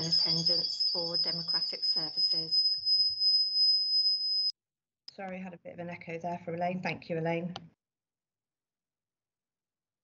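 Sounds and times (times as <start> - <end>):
steady high-pitched whistle: 0.0 - 4.6
click: 7.5 - 7.8.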